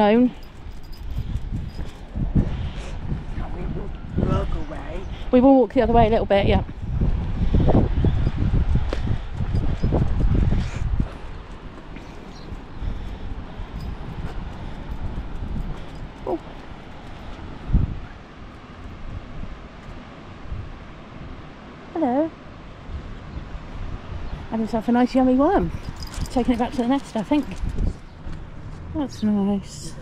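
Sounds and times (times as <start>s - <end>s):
wind buffeting microphone: 0.0s - 21.7s, 22.5s - 30.0s.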